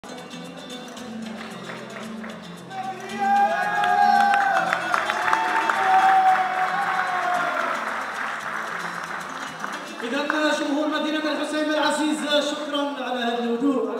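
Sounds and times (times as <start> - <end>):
applause and cheering: 1.4 - 11.5.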